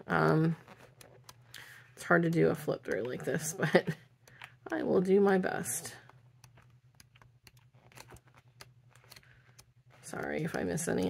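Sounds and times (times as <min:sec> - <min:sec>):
paper sheets flipping: 0:06.5 - 0:10.5.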